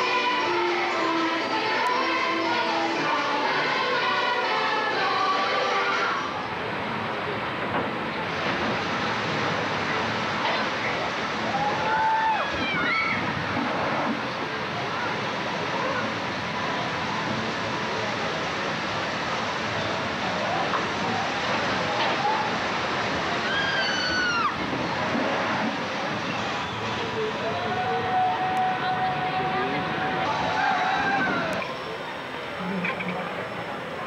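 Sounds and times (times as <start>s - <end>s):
people's voices: 0.0s - 34.0s
water rushing down flume: 0.0s - 34.0s.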